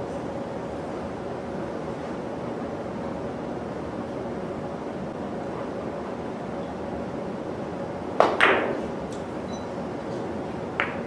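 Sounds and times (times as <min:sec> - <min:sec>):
billiard balls clicking: 0:10.8 - 0:11.0.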